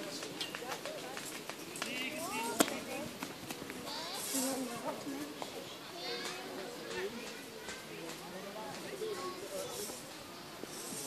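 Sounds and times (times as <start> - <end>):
murmur of spectators: 0.0 - 11.0.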